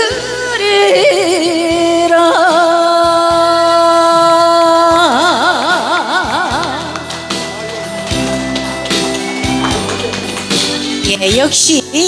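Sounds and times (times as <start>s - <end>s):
backing music: 3.4s - 12.0s.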